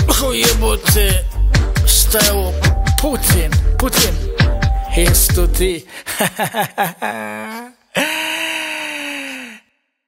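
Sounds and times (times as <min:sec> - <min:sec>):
man's breathy drawn-out aaah: 0:07.1 - 0:09.8.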